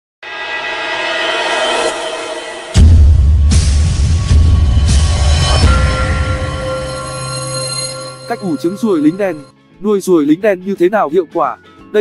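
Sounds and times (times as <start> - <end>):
sustained horn-like chord: 0.3 - 9.5.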